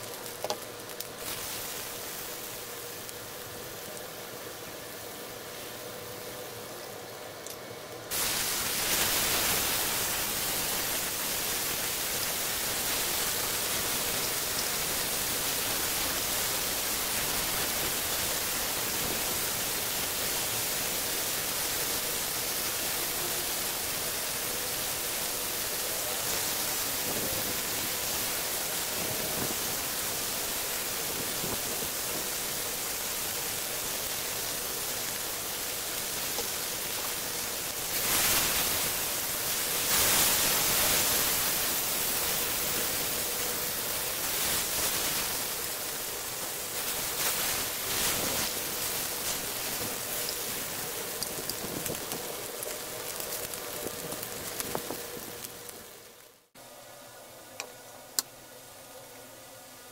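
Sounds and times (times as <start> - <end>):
meat sizzling in oil: 0.0 - 4.4, 8.1 - 56.2.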